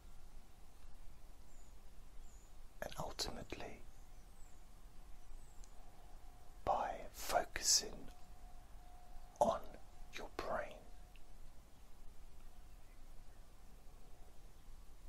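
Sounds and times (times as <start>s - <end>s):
faint steady hum: 0.0s - 15.0s
man whispering: 2.8s - 3.9s, 6.6s - 8.2s, 9.4s - 11.2s.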